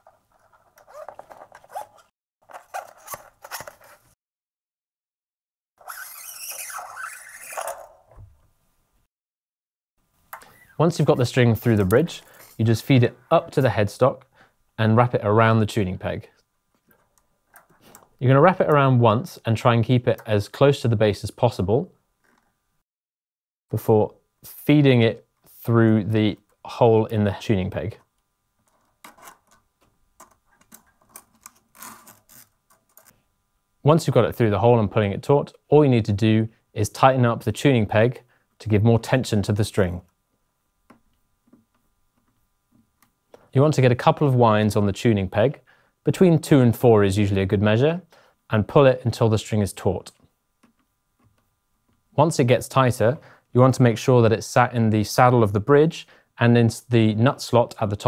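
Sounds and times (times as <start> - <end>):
guitar string scraping through metal: 5.8 - 8.0.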